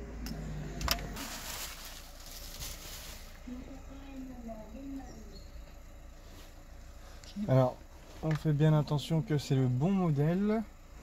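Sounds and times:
bubble wrap rustling and crinkling: 1.2 - 3.6.

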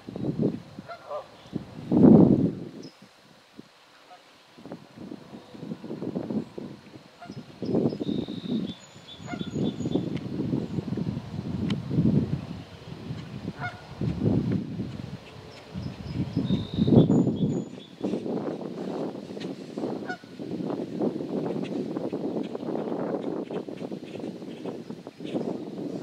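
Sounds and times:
geese honking: 13.6 - 13.8
high thin bird chirps: 15.9 - 18.1.

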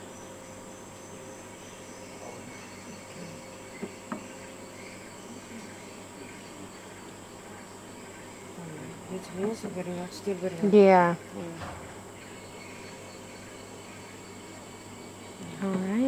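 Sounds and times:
insects droning: 0.0 - 16.0.

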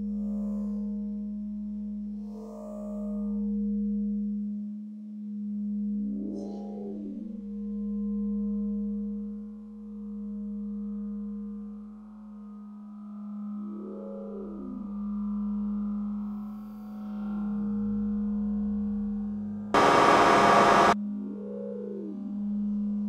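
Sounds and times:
burst of electronic static: 19.8 - 21.0
low synthesized drone hum: 19.8 - 21.0.

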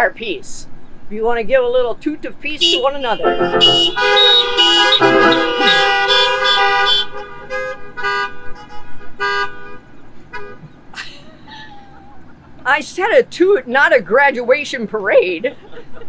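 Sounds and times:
car horns honking: 2.6 - 10.6.

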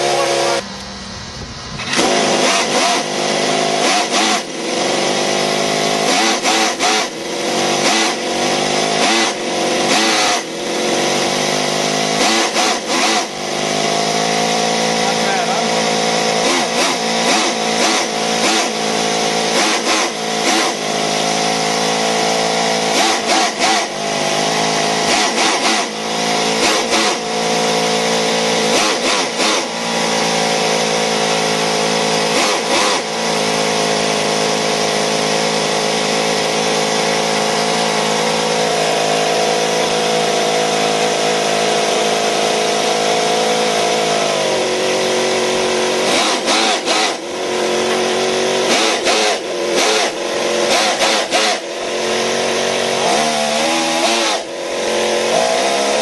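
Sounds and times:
model engine running at high speed: 0.0 - 56.0.

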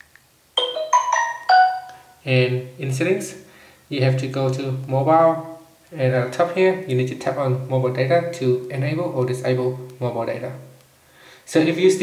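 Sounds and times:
marimba-like chime: 0.6 - 2.2.

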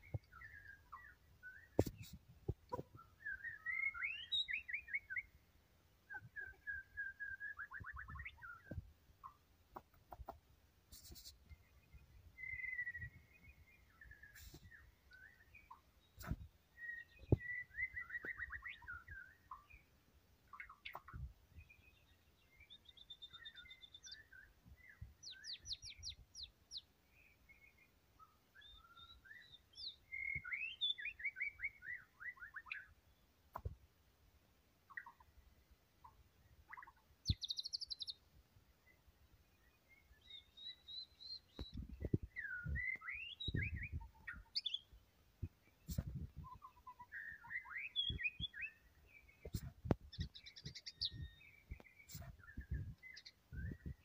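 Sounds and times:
bird singing whistles and trills: 2.9 - 5.4, 6.1 - 8.8, 12.4 - 19.8, 20.5 - 32.9, 36.7 - 38.2, 39.8 - 45.0, 45.8 - 54.0.

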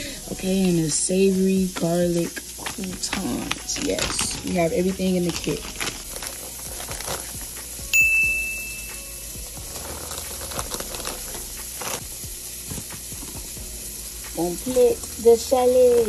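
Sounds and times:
plastic bag crinkling: 0.0 - 7.9, 8.8 - 13.5
scissors cutting plastic: 1.7 - 7.9, 9.5 - 12.0
text message notification chime: 8.0 - 9.0.

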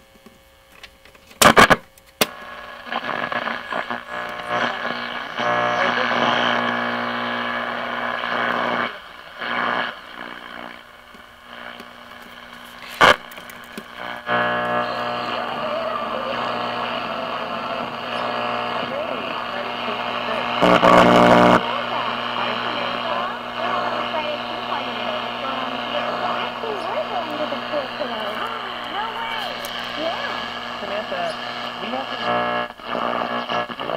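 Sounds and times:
loud radio crackle: 0.7 - 33.9
radio broadcast fragments: 1.4 - 33.9
radio hum: 1.4 - 33.9.

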